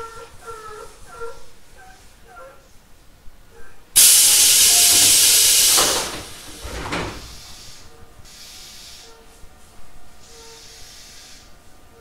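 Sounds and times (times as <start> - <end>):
loud compressed air hiss: 4.0 - 9.2, 10.3 - 11.6.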